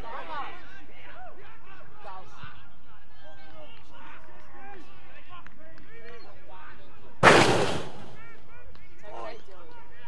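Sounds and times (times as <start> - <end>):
sudden loud burst of noise: 7.2 - 8.2.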